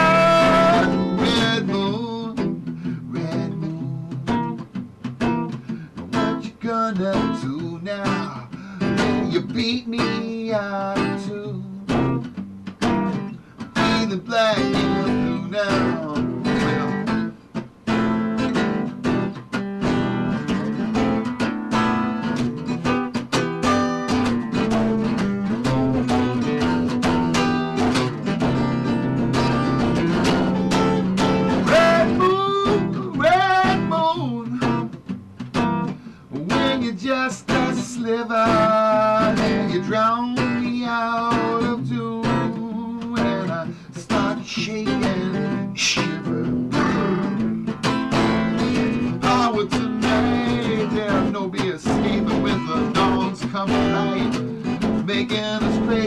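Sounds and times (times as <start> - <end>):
man singing: 0.0 - 4.6, 6.0 - 12.3, 13.6 - 17.4, 31.3 - 35.0, 36.3 - 56.0
acoustic guitar strumming: 0.0 - 56.0.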